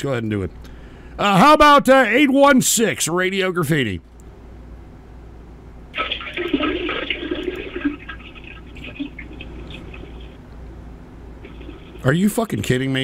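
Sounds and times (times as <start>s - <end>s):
diarrhea splashing in toilet: 6.0s - 10.4s, 11.4s - 12.2s.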